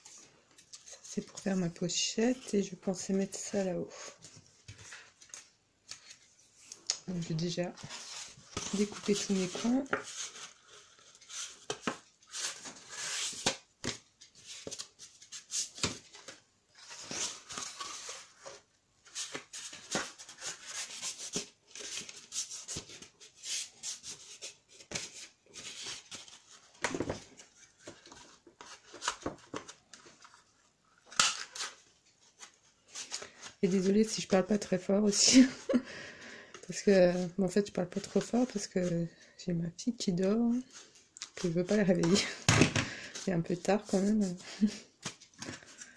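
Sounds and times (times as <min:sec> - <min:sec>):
paper rustling and scraping: 0:03.9 - 0:30.5, 0:43.0 - 0:45.9.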